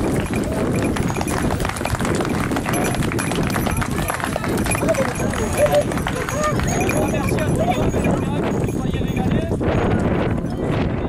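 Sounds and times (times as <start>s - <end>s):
horse hooves on dry ground: 0.0s - 9.6s
many voices talking: 0.0s - 11.0s.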